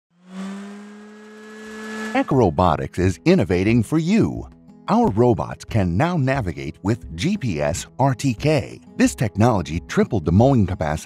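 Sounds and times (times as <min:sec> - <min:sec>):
motor-like hum: 0:00.1 - 0:02.3.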